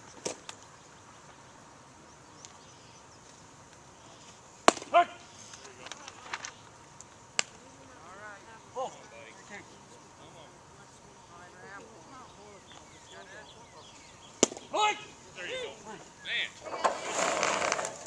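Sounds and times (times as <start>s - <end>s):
baseball popping into mitt: 4.6s - 5.0s, 14.4s - 14.6s
sharp crack: 4.6s - 7.6s, 14.4s - 14.7s.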